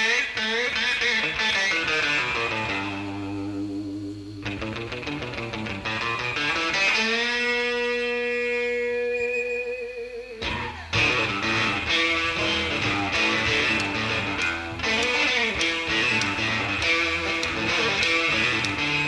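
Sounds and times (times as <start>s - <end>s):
blues-rock band playing: 0.0s - 19.0s
electric guitar sustained note: 0.0s - 19.0s.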